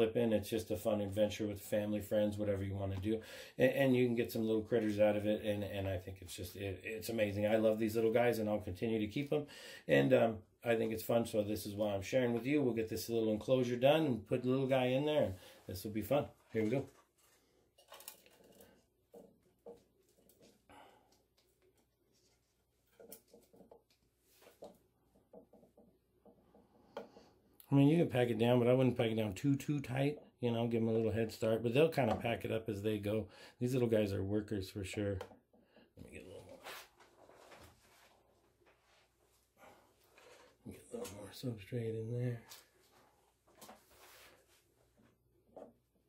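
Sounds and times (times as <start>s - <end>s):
substrate rustling and scratching: 16.4s - 20.7s, 21.3s - 24.8s.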